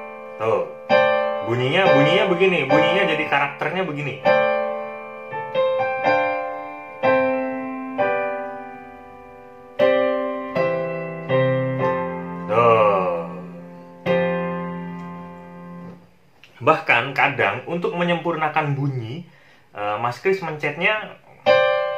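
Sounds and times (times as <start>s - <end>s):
piano chords: 0.0s - 19.4s, 20.7s - 21.9s.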